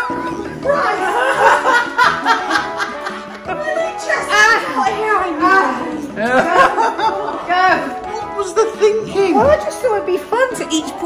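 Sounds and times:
woman laughing hard: 0.6s - 3.5s, 6.2s - 7.5s.

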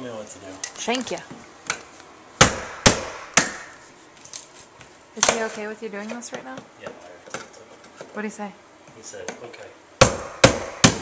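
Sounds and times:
hammer striking wood: 2.4s - 3.8s, 10.0s - 11.0s.

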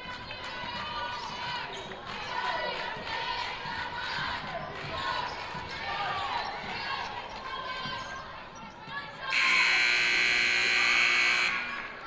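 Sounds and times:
crowd voices: 0.0s - 12.0s
sneakers squeaking: 6.2s - 9.2s
scoreboard horn: 9.3s - 11.8s.

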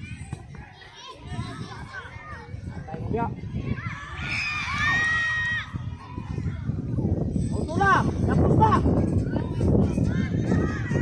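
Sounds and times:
children calling and shouting: 0.0s - 11.0s.

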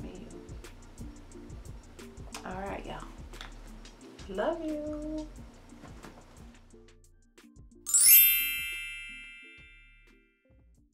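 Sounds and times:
bell-like chime: 7.9s - 10.2s.

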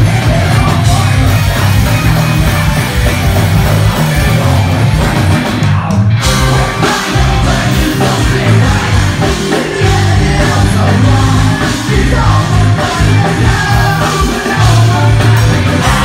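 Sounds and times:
live heavy metal band: 0.0s - 16.0s.

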